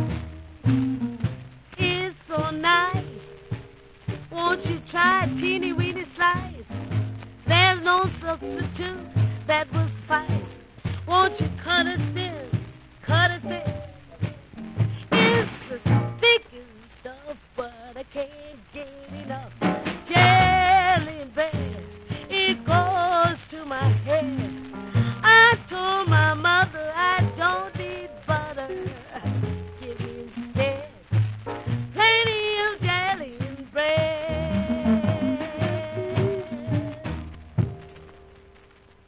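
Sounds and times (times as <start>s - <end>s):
rhythm and blues record playing: 0.0s - 39.0s.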